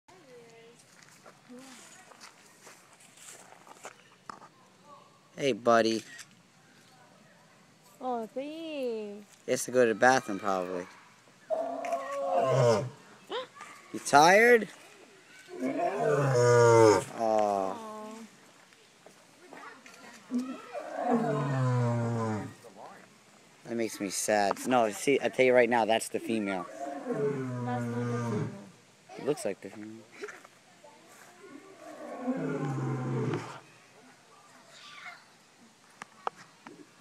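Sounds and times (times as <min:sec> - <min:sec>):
faint voices talking: 0:00.1 - 0:37.0
lion roaring grunt: 0:11.5 - 0:13.0, 0:15.6 - 0:17.1, 0:20.7 - 0:22.6, 0:26.7 - 0:28.6, 0:31.8 - 0:33.6.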